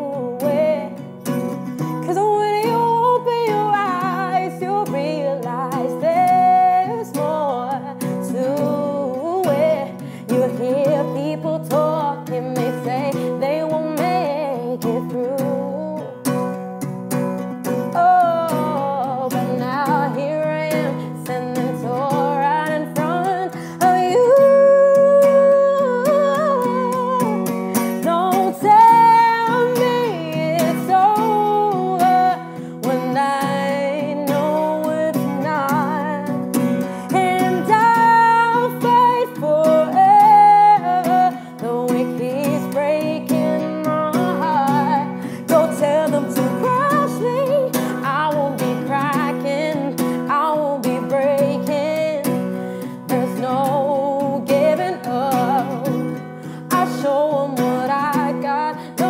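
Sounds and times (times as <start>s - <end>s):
strummed acoustic guitar: 0.0s - 59.0s
woman singing: 0.0s - 59.0s.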